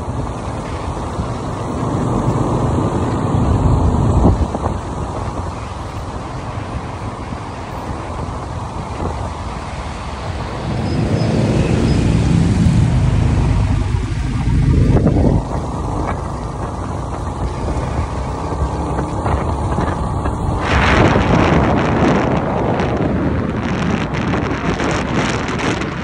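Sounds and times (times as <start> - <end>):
motorbike engine: 0.0 - 25.9
wind rushing over microphone: 0.0 - 26.0.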